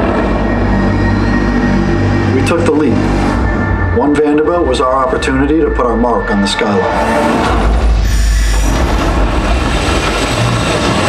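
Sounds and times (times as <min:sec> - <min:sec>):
held musical tones: 0:00.0 - 0:08.5
low vehicle rumble: 0:00.0 - 0:11.0
narration: 0:02.2 - 0:07.5.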